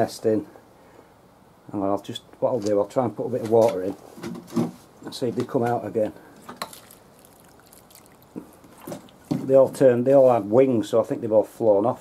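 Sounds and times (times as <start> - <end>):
water pouring onto soil: 6.5 - 9.3.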